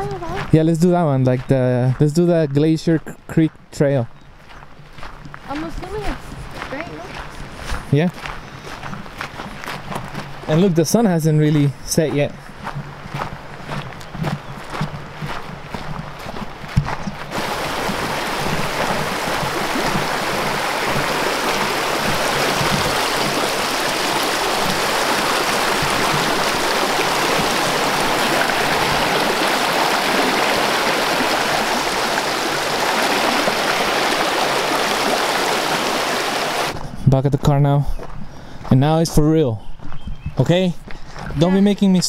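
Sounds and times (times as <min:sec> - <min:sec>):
footsteps on dirt trail: 0:00.0 - 0:37.0, 0:37.6 - 0:42.0
stream rushing over stones: 0:17.2 - 0:36.8.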